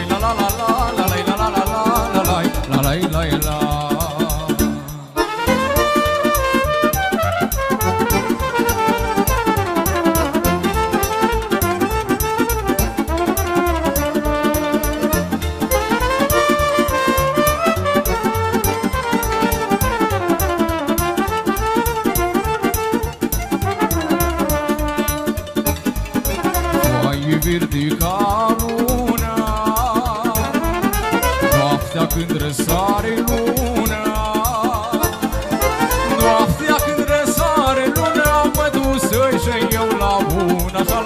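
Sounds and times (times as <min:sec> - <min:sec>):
folk dance band music: 0:00.0 - 0:41.0.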